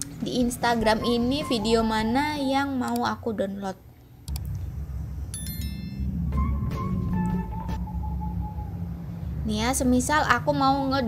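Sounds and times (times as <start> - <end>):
low rumble: 4.3 - 11.0
bright bell chime: 5.3 - 6.1.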